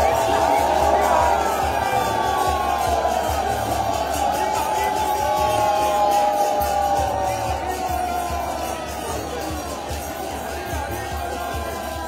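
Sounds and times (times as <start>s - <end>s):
dense crowd: 0.0s - 12.0s.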